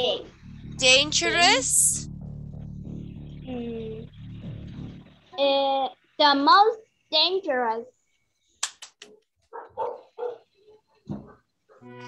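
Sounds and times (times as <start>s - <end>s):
dog barking: 9.1s - 11.9s.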